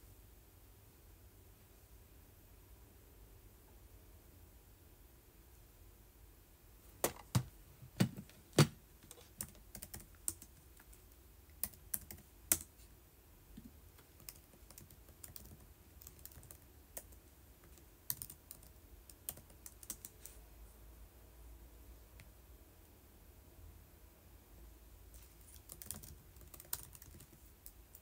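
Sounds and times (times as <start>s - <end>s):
fingers typing on device: 9.1s - 12.7s, 14.0s - 20.3s, 25.2s - 28.0s.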